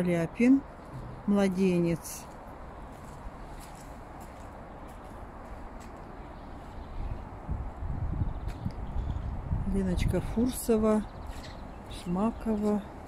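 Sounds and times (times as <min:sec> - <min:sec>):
low rumbling on microphone: 0:00.8 - 0:01.9, 0:06.4 - 0:11.9.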